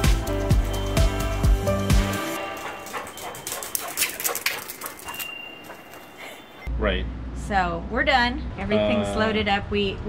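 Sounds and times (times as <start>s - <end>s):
background music: 0.0s - 4.2s
dog barking: 2.4s - 6.2s.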